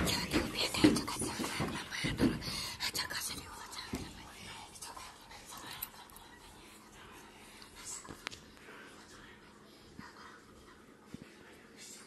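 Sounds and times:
whispering voices: 0.0s - 12.0s.

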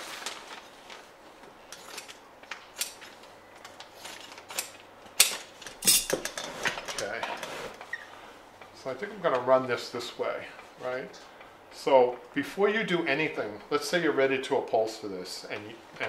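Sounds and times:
fabric rustling: 0.0s - 1.7s.

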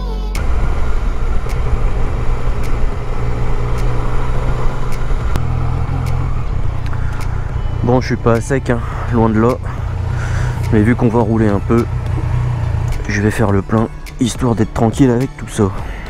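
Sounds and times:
motorcycle engine running: 0.4s - 14.0s.

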